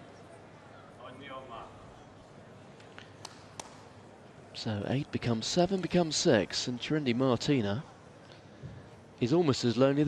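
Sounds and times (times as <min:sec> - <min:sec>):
indoor arena background: 0:00.0 - 0:10.0.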